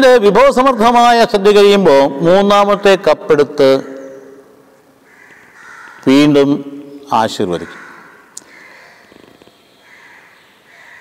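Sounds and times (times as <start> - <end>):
faint bird calling: 3.7 - 11.0.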